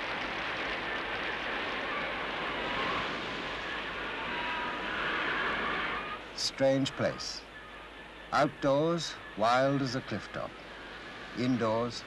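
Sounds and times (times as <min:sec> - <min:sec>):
wind and rain rushing: 0:00.0 - 0:12.0.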